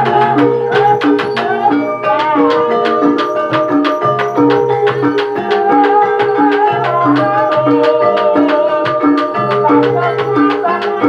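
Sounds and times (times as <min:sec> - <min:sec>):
gongs ringing: 0:00.0 - 0:11.0
wavering melody line: 0:00.0 - 0:11.0.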